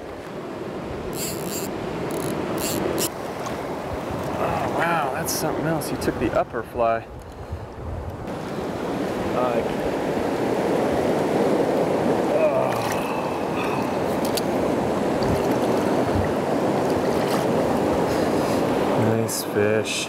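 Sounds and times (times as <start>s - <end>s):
river water rushing: 0.0s - 5.7s, 8.3s - 19.8s.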